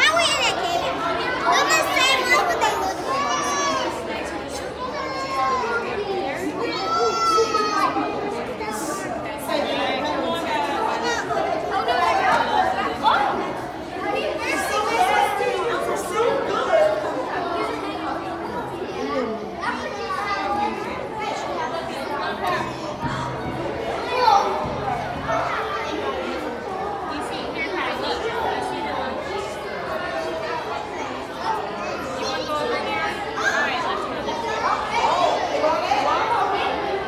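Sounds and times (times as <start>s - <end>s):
children's voices: 0.0s - 37.0s
people chattering: 0.0s - 37.0s.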